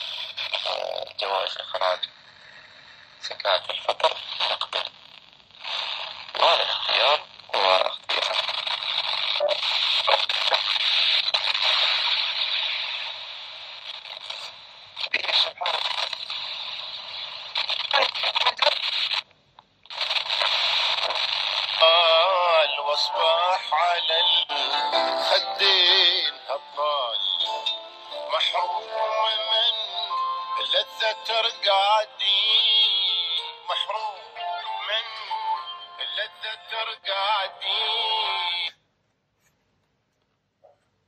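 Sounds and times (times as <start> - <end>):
singing voice on radio: 0.0 - 2.2, 3.2 - 4.9, 5.6 - 13.2, 13.9 - 19.2, 19.9 - 38.8
broadcast fragments on radio: 0.0 - 19.3, 19.9 - 38.8
radio static hiss: 0.0 - 19.3, 19.9 - 38.8.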